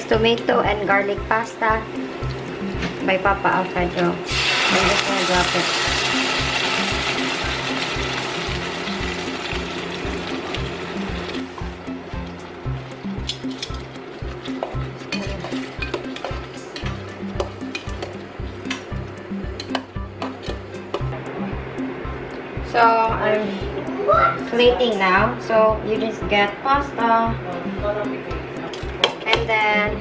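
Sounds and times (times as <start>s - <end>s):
background music with bass beat: 0.0s - 4.6s, 5.8s - 30.0s
sauce sizzling in a hot pan: 4.2s - 18.5s.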